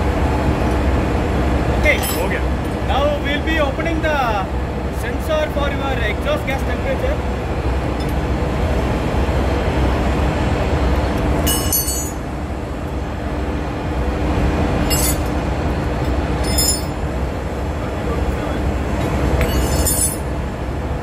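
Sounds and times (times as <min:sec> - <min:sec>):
engine-room machinery drone: 0:00.0 - 0:21.0
spanner clinking on metal: 0:11.4 - 0:12.2, 0:14.8 - 0:15.3, 0:16.4 - 0:17.0, 0:19.4 - 0:20.3.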